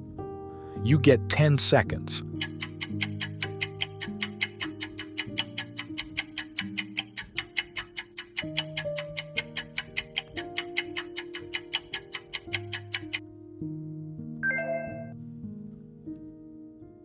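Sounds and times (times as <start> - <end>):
slow held chords music: 1.9 - 17.0
clock ticking fast: 2.3 - 13.2.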